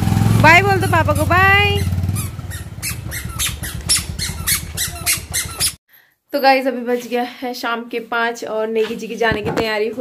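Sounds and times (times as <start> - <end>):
motorcycle engine pulling away: 0.0 - 5.8
short high squeaks: 1.0 - 5.8.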